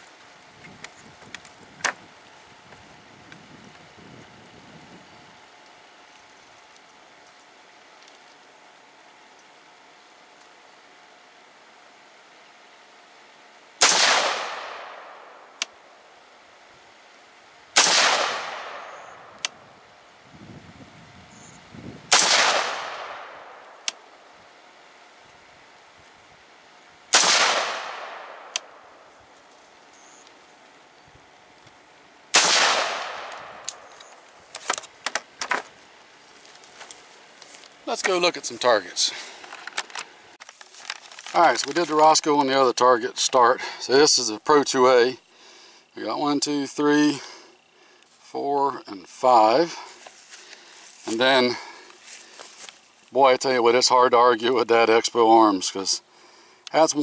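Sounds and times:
rifle shots with echo: 0:13.8 - 0:15.4, 0:17.8 - 0:19.3, 0:22.1 - 0:23.6, 0:27.1 - 0:28.8, 0:32.3 - 0:33.9.

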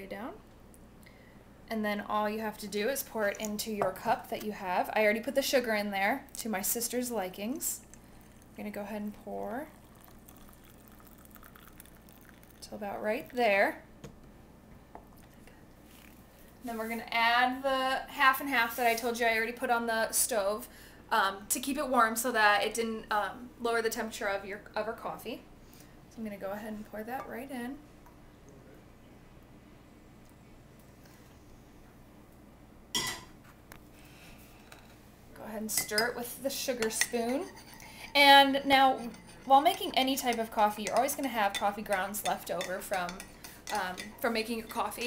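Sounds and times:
coffee pouring into a mug: 0:07.8 - 0:13.4, 0:15.1 - 0:16.2
dishware clinking: 0:33.0 - 0:33.3.

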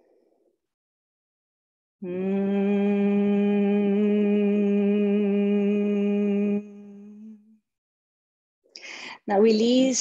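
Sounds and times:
woman humming one pitch: 0:02.0 - 0:07.6.

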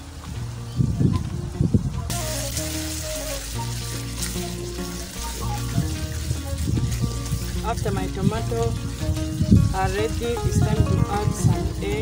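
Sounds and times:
background music: 0:00.0 - 0:12.0
sauce sizzling in wok: 0:02.1 - 0:10.5.

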